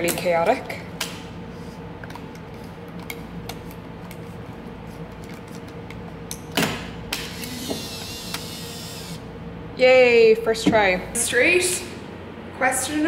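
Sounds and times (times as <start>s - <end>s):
camera motor whirring: 7.2s - 9.2s.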